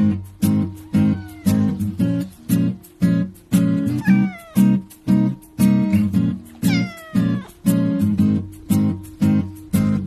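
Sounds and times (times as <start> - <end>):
strummed guitar music with beat: 0.0 - 10.0
cat meowing: 0.6 - 2.2, 3.8 - 5.0, 6.6 - 7.8.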